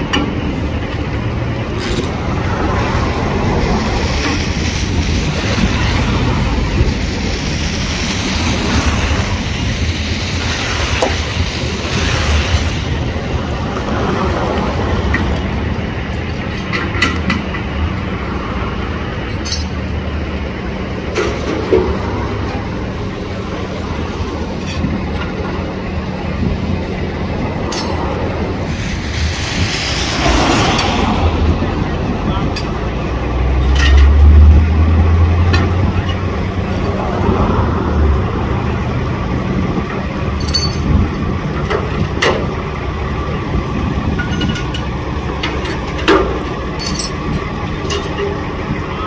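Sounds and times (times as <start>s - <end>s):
street traffic: 0.0s - 49.0s
truck engine idling: 0.0s - 49.0s.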